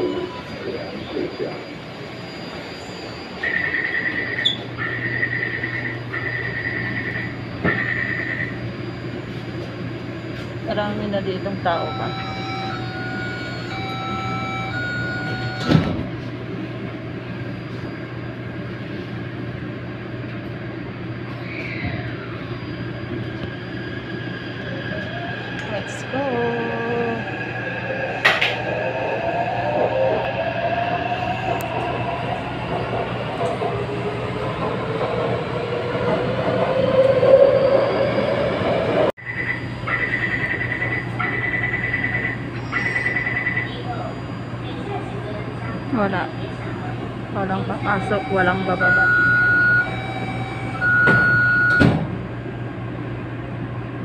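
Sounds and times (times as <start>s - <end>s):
train doors shutting: 0.0s - 8.6s, 11.4s - 16.8s, 26.9s - 52.4s
high tone beeping: 0.0s - 16.0s, 39.2s - 51.8s
train running through tunnel: 0.0s - 54.0s.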